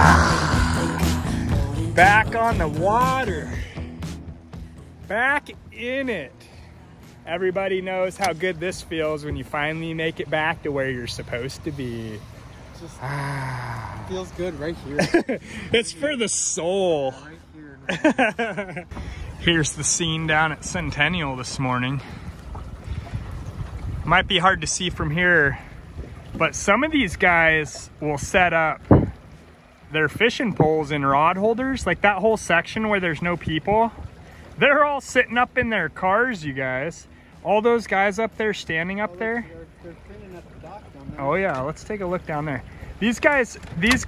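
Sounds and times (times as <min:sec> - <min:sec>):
swooping wordless vocals: 0:00.0 - 0:03.9
background music with low tones: 0:00.0 - 0:12.5
water washing against boat: 0:00.0 - 0:44.0
wind buffeting microphone: 0:18.9 - 0:30.8.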